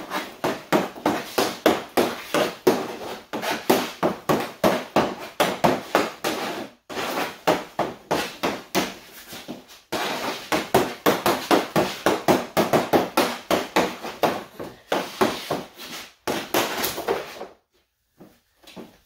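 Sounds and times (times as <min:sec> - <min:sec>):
hockey stick clacking puck: 0:00.0 - 0:17.5.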